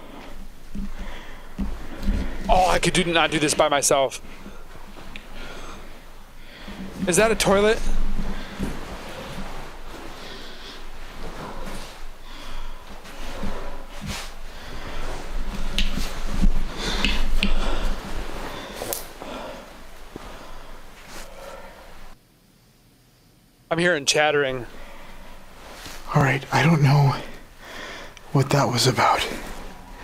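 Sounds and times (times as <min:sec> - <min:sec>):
person breathing hard: 0:00.0 - 0:02.6, 0:04.2 - 0:22.2, 0:24.7 - 0:26.1, 0:27.1 - 0:28.3.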